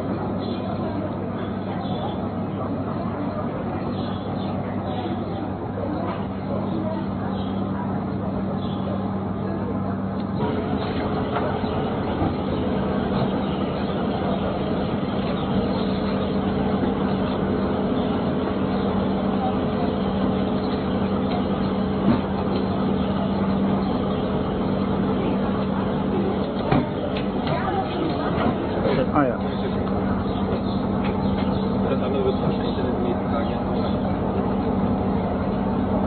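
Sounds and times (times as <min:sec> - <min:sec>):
engine humming: 0:00.0 - 0:36.0.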